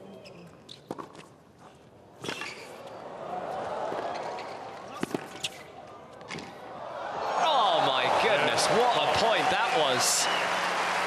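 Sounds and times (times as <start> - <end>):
crowd cheering and shouting: 6.8 - 11.0.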